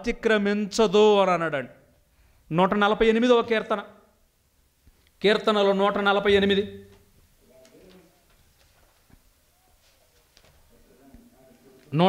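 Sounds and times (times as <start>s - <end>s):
faint low cooing: 7.4s - 8.4s.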